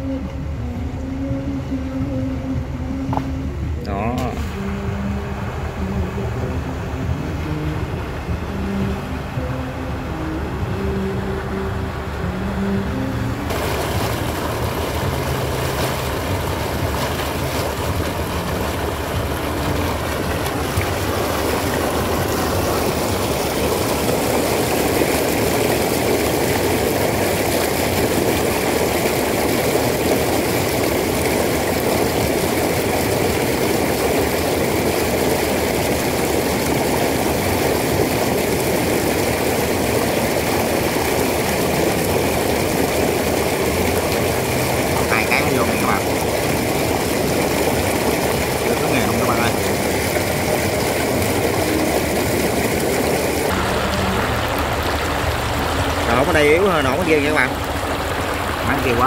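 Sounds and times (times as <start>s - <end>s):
slurry gushing from a pipe: 13.5s - 59.0s.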